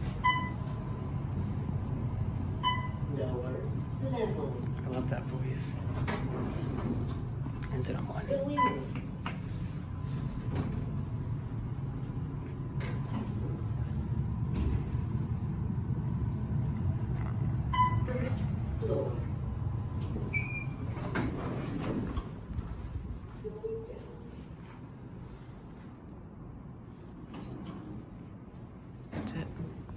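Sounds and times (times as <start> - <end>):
elevator hum: 0.0 - 29.9
elevator doors sliding open: 5.7 - 7.5, 8.4 - 15.6, 19.8 - 23.0.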